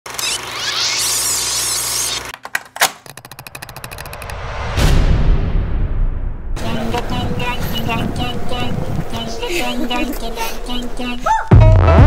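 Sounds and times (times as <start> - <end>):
rapid stutter of clicks: 2.9 - 4.4
loud hit: 4.2 - 6.8
music: 10.7 - 12.0.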